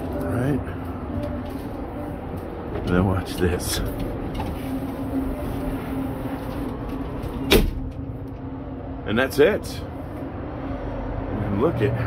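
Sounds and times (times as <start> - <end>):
steady low hum: 0.0 - 12.0
sharp metal clunk: 7.5 - 7.9.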